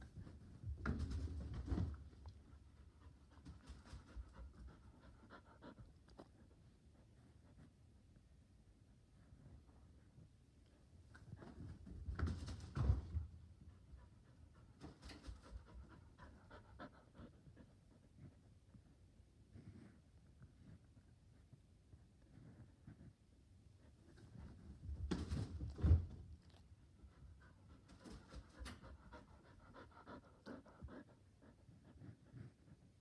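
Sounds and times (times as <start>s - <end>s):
dog panting: 2.2s - 8.2s, 13.6s - 21.6s, 26.4s - 33.0s.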